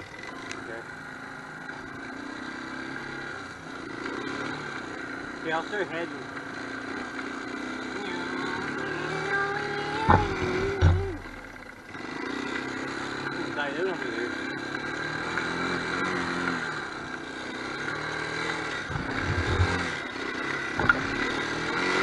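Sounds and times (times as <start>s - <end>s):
atv engine revving: 0.0s - 22.0s
heavy thumps: 9.9s - 11.6s, 18.8s - 20.1s, 20.7s - 21.4s.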